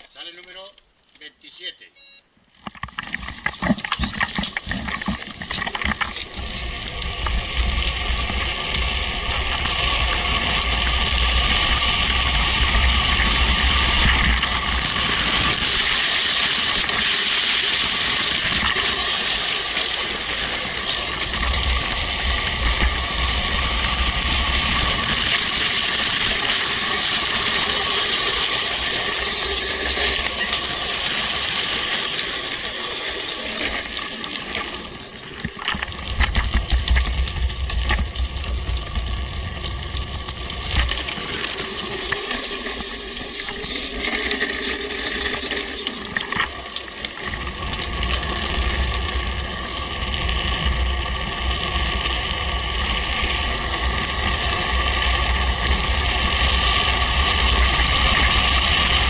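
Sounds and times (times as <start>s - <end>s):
wheels rattling over wet asphalt: 2.8s - 59.0s.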